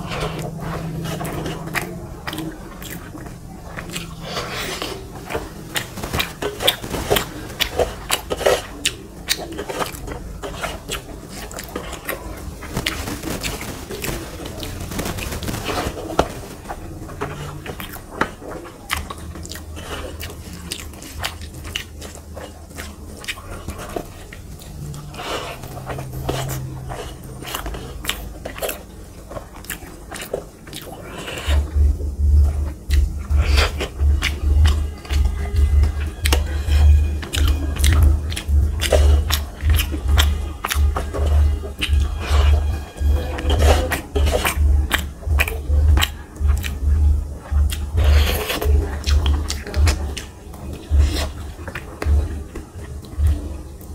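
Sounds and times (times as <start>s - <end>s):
wet chewing: 0.0s - 53.9s
low thumping: 31.6s - 48.1s.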